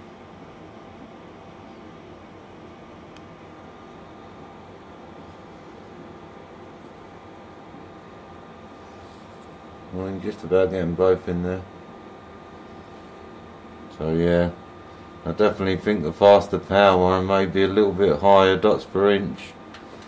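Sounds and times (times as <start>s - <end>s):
fan hissing and humming: 0.0s - 20.0s.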